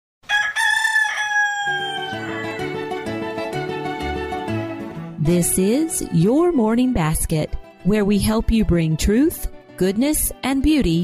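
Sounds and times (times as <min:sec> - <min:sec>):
rooster crowing: 0:00.2 - 0:03.3.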